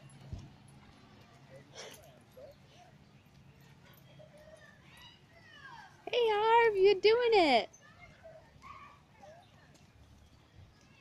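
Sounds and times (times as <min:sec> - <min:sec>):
faint distant voices: 0:00.0 - 0:11.0
hooves walking on dirt path: 0:00.0 - 0:11.0.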